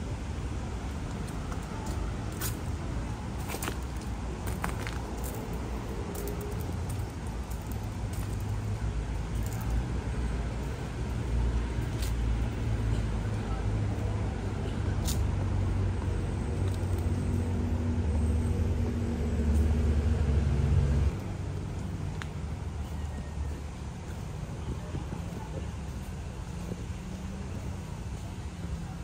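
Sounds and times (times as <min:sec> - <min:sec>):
engine and traffic rumble: 0:00.0 - 0:29.0.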